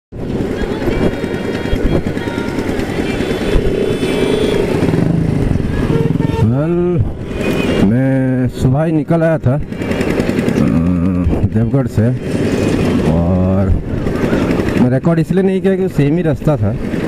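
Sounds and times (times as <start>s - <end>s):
wind and road noise: 0.1s - 17.0s
motorcycle engine running: 0.2s - 17.0s.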